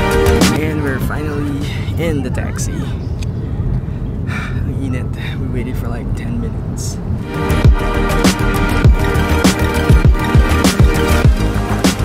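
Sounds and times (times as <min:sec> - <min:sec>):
low rumble inside taxi cabin: 0:00.6 - 0:07.3.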